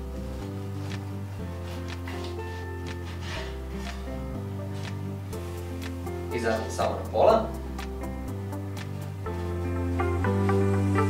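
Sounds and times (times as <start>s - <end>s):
background music low chords: 0.0s - 11.0s.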